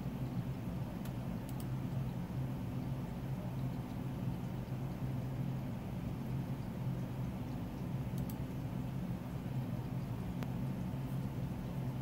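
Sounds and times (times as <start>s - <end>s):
steady low hum: 0.0s - 12.0s
faint clicks: 1.0s - 1.8s, 8.1s - 8.4s.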